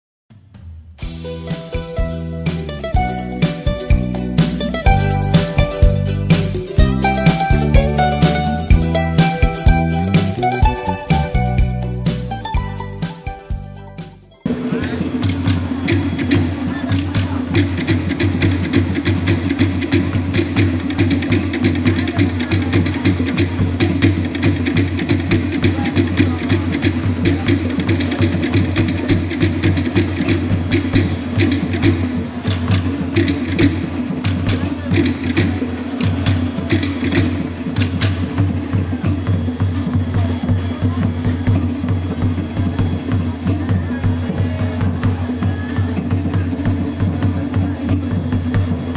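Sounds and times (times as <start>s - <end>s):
low drum pulse: 0.3s - 48.9s
woody clicking strikes: 1.0s - 14.1s, 15.2s - 39.3s.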